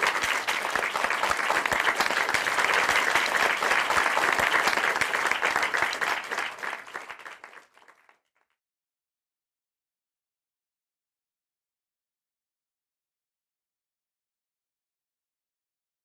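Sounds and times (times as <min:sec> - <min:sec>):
audience applauding: 0:00.0 - 0:08.3.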